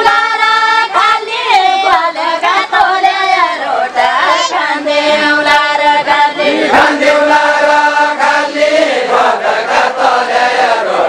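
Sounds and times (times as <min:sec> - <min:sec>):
group singing folk song: 0:00.0 - 0:11.0.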